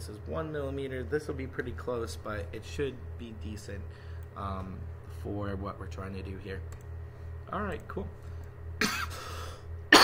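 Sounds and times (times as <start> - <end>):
man coughing: 8.8 - 10.0.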